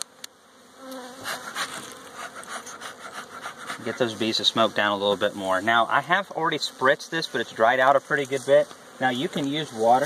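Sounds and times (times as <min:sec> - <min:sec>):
honeybees buzzing: 0:00.0 - 0:10.0
bee smoker bellows puffing: 0:00.8 - 0:10.0.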